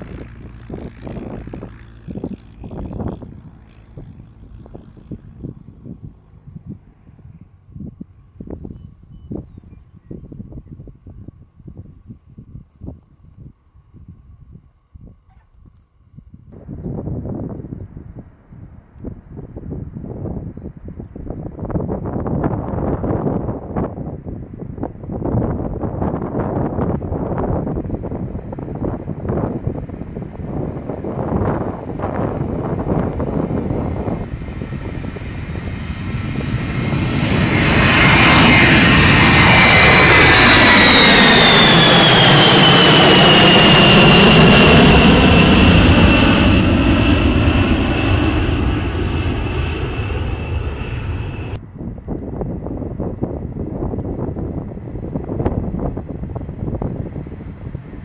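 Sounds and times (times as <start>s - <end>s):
jet bomber roaring overhead: 0.0s - 7.8s, 21.4s - 51.8s.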